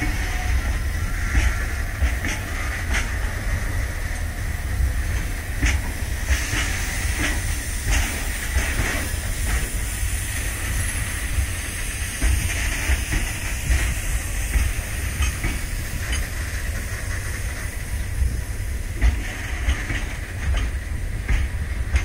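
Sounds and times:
wheels clacking over rail joints: 0.0 - 11.4, 12.0 - 22.0
freight train rumbling past: 0.0 - 22.0
hiss: 0.0 - 22.0.

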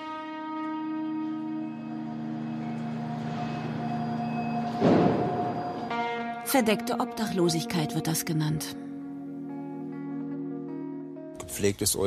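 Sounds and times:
electric train hum: 0.0 - 10.8.

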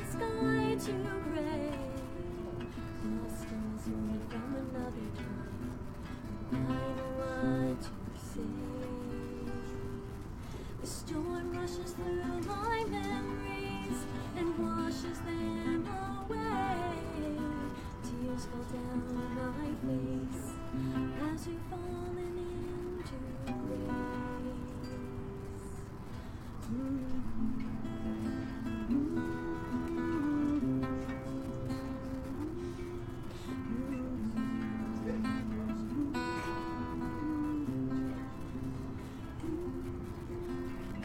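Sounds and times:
acoustic guitar melody: 0.0 - 41.0.

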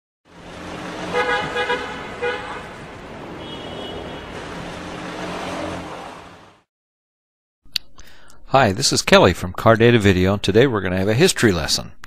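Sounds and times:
car engine running: 0.3 - 6.6
car horn toots: 0.7 - 6.0.

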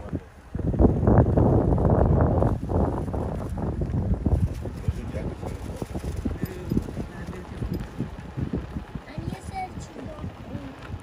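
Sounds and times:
wind buffeting microphone: 0.0 - 11.0
cart body rattling and knocking: 4.3 - 8.2.

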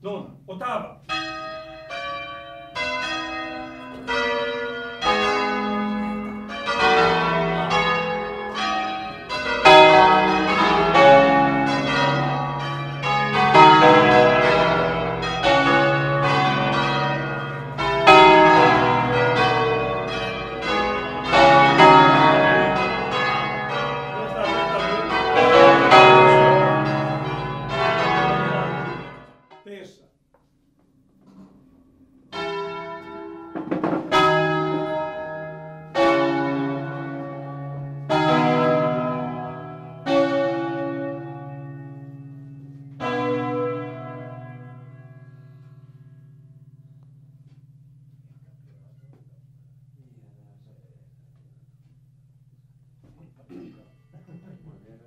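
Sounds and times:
church bells pealing: 1.0 - 30.0, 31.9 - 54.1.

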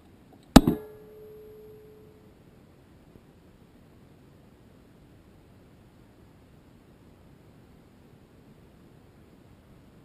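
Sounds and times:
sharp metallic bang: 0.6 - 2.1
ringing metallic tone: 0.6 - 2.3.

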